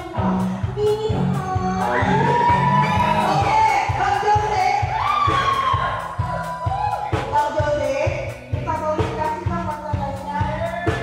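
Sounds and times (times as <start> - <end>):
steady drum beat: 0.0 - 11.0.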